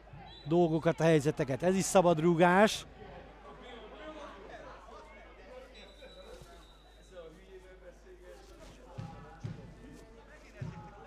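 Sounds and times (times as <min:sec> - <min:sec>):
faint voices of players: 0:00.0 - 0:11.0.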